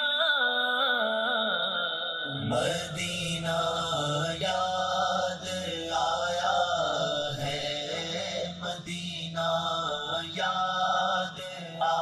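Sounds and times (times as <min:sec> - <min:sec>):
man chanting in long held notes: 0:00.0 - 0:12.0
low hummed drone: 0:02.3 - 0:12.0.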